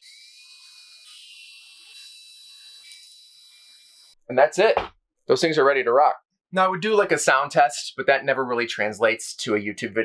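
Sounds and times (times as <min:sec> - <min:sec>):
cordless drill motor whine: 0:00.0 - 0:04.2.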